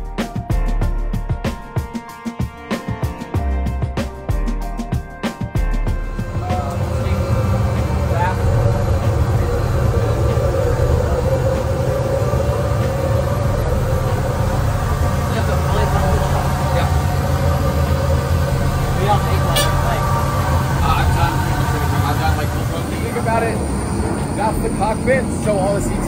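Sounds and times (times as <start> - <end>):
equipment rumble and hum: 5.6 - 26.0
faint indistinct voices: 6.3 - 26.0.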